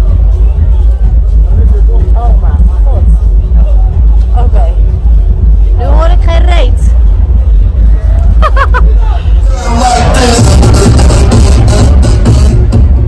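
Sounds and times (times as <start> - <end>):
people's voices: 0.0 - 10.4
electronic dance music: 0.0 - 13.0.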